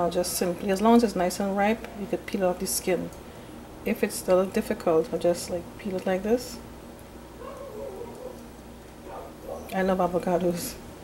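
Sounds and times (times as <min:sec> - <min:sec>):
faint wavering whine-like voice: 0:07.4 - 0:08.4.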